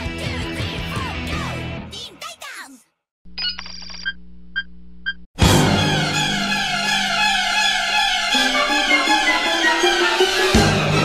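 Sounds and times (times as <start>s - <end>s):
low electronic hum: 4.0s - 5.2s.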